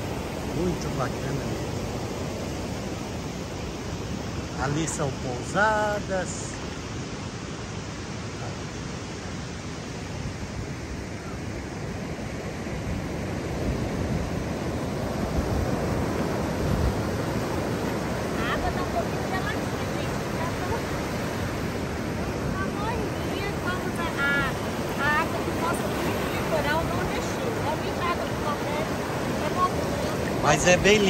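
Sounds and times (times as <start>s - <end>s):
ocean surf breaking on beach: 0.0s - 31.0s.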